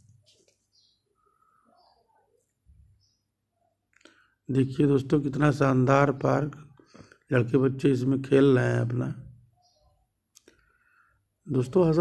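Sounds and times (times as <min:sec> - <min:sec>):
man speaking: 0:04.5 - 0:06.7, 0:07.3 - 0:09.4, 0:11.5 - 0:12.0.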